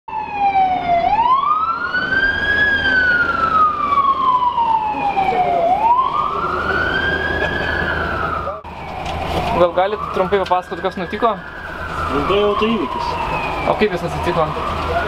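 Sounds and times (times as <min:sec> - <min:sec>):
emergency vehicle siren wailing: 0:00.1 - 0:15.0
street traffic noise: 0:00.1 - 0:15.0.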